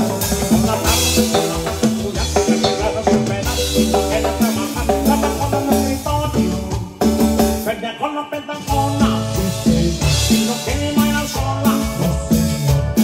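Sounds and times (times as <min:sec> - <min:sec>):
electric bass line: 0:00.0 - 0:07.7, 0:08.7 - 0:13.0
keyboard melody: 0:00.0 - 0:07.8, 0:08.4 - 0:13.0
drums: 0:00.0 - 0:13.0.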